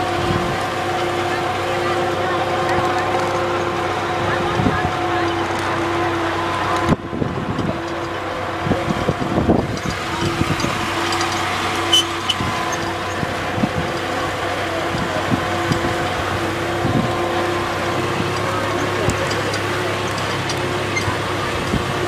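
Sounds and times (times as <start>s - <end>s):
tractor engine running: 0.0s - 22.0s
wagon knocks and rattles: 0.0s - 22.0s.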